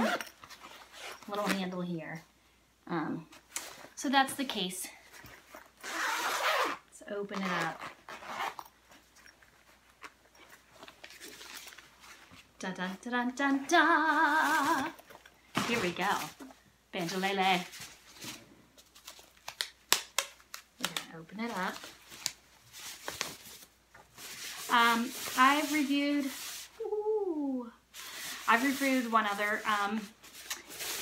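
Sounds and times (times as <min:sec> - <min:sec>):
rustling of wrapping: 0:00.0 - 0:01.8, 0:04.9 - 0:13.1, 0:13.7 - 0:31.0
gig bag unzipping: 0:05.8 - 0:06.8, 0:07.4 - 0:08.7.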